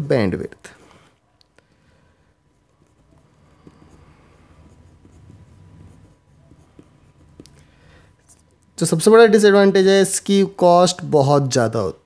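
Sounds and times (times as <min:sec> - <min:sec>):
low room hum: 0:00.1 - 0:12.0
pen scratching on paper: 0:01.7 - 0:08.6.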